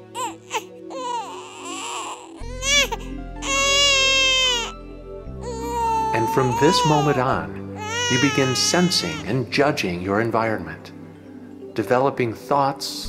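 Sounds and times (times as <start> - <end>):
soft background music: 0.0 - 13.0
newborn baby crying: 0.1 - 4.8, 5.4 - 9.4.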